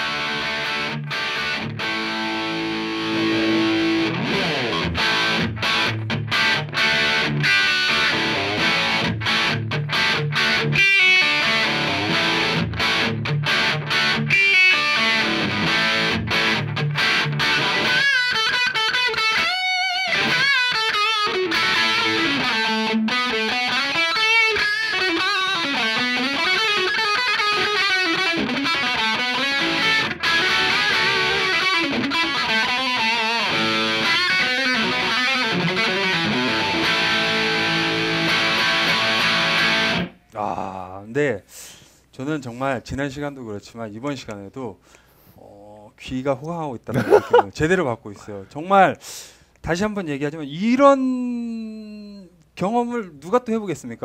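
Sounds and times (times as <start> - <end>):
distorted electric guitar: 0.0 - 40.2.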